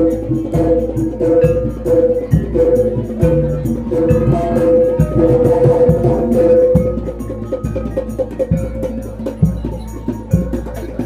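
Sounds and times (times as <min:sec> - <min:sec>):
clatter of small percussion: 0:00.0 - 0:11.0
low drum strokes: 0:00.0 - 0:11.0.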